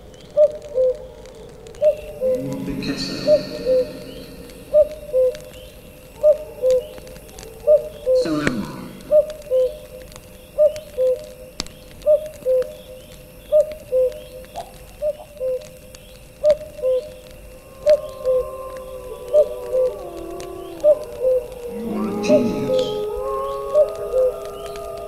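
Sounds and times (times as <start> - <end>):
bird two-note hooting call: 2.2 - 5.5
held gliding tones: 2.2 - 5.6.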